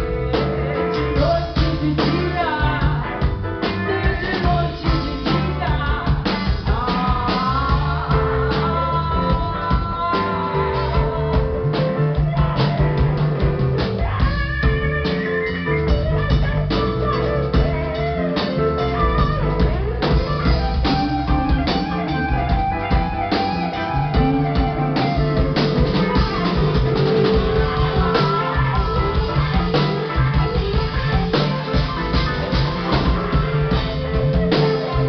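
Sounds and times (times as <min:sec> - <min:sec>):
drum kit beat: 0:00.0 - 0:35.0
electric guitar playing: 0:00.0 - 0:35.0.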